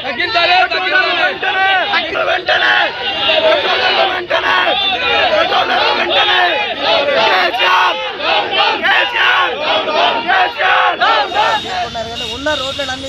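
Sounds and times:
crowd shouting slogans: 0.0 - 12.2.

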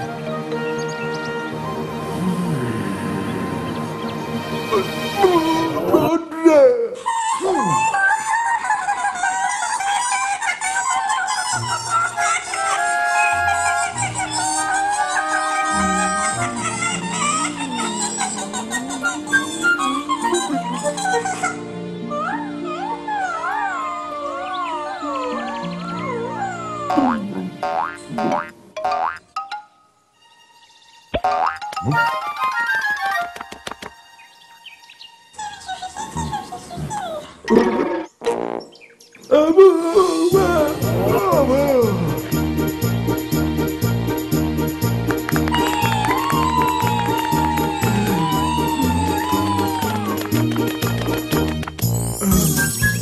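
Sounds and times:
cartoon background music: 0.0 - 6.2, 11.2 - 29.8, 31.1 - 34.8, 39.8 - 53.0
falling boing sound effects: 26.9 - 29.2
warbling chicken-like bird call: 45.6 - 50.2.

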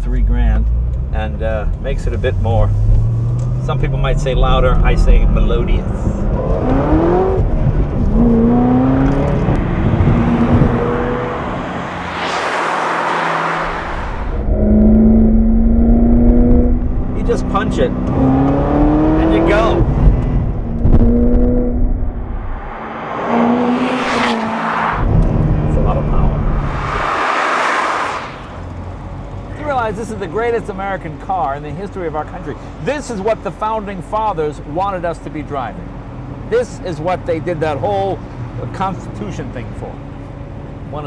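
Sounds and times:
car engine accelerating: 0.2 - 29.5.

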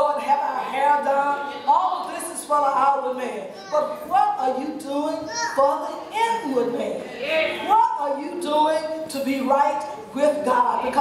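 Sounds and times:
woman preaching: 0.0 - 11.0.

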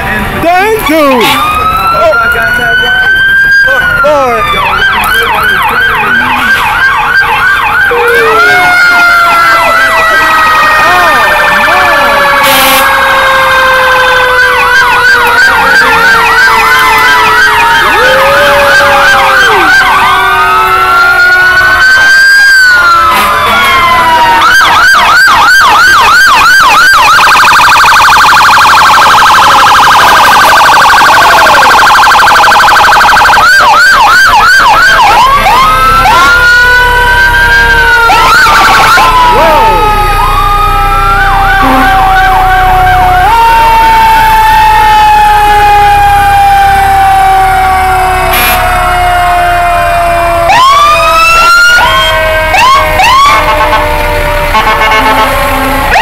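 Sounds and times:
fire truck sirens: 0.0 - 56.0.

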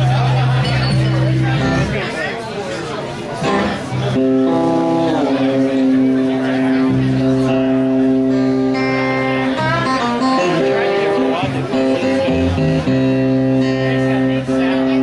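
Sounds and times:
blues electric guitar: 0.0 - 2.2, 3.2 - 15.0.

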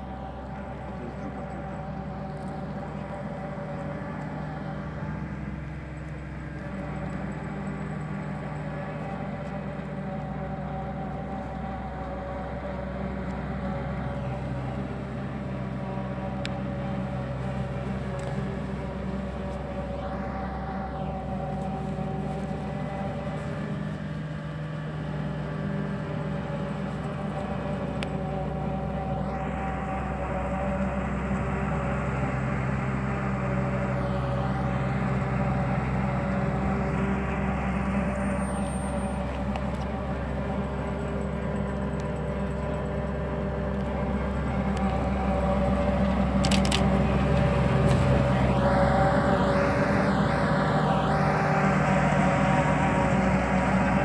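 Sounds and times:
combine harvester diesel engine: 0.0 - 54.0.

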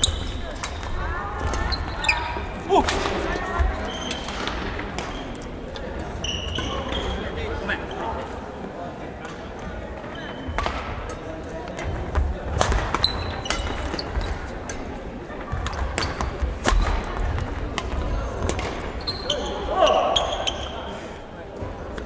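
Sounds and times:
shoe squeaks on wooden floor: 1.5 - 2.5, 6.2 - 7.3, 10.0 - 10.6, 13.0 - 14.5, 18.9 - 20.9
rackets hitting shuttlecock: 17.7 - 18.9.

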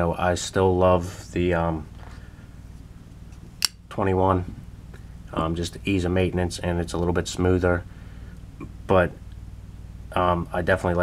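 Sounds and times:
faint steady low hum: 0.0 - 11.0
sharp click of knife: 3.6 - 3.8.

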